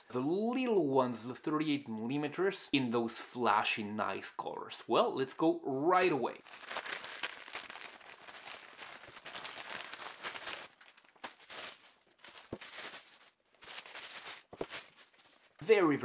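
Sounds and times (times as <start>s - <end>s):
plastic wrapping rustling: 6.4s - 15.6s.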